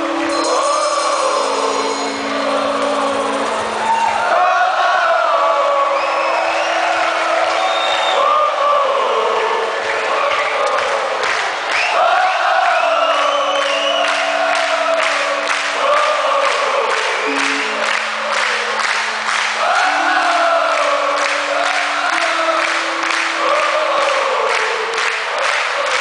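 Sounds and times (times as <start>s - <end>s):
live band playing: 0.0s - 4.3s, 17.3s - 23.9s
crowd singing along: 0.0s - 26.0s.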